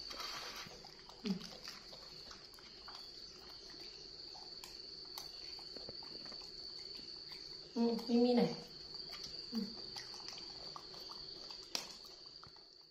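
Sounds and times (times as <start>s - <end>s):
crickets trilling: 0.0s - 12.9s.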